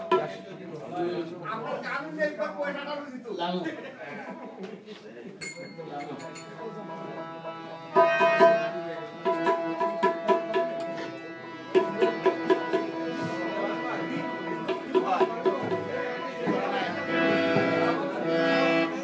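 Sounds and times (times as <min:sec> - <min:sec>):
tabla drums: 0:00.0 - 0:00.6, 0:08.0 - 0:13.6, 0:14.2 - 0:17.9
harmonium chord: 0:06.6 - 0:19.0.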